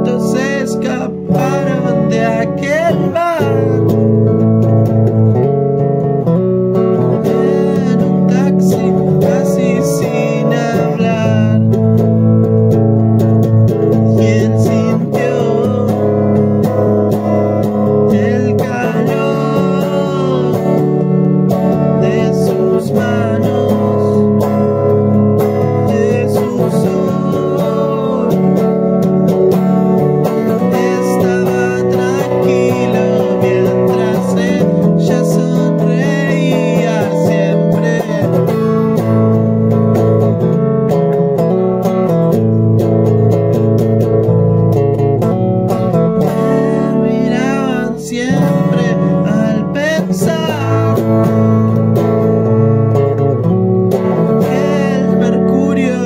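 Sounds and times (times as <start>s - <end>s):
person singing: 0.0s - 5.5s, 6.8s - 12.4s, 13.2s - 44.7s, 45.7s - 56.0s
acoustic guitar chords: 0.0s - 56.0s.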